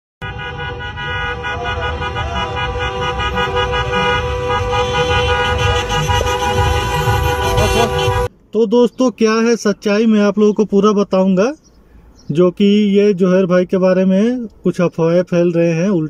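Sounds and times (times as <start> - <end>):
car horns honking together: 0.2 - 8.3
engine and street rumble: 0.2 - 16.0.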